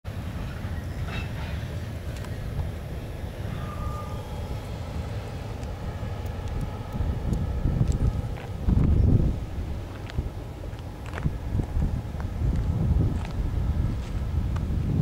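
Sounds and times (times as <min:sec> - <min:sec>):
distant diesel locomotive rumble: 0:00.1 - 0:15.0
wind buffeting microphone: 0:00.1 - 0:15.0.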